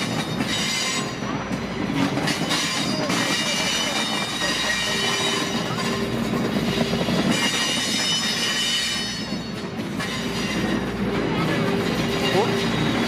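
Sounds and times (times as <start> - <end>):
passenger train rumbling past: 0.0 - 13.0.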